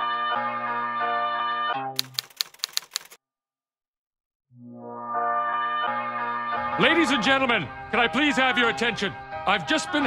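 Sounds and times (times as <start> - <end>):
typewriter key clicks: 2.0 - 3.2.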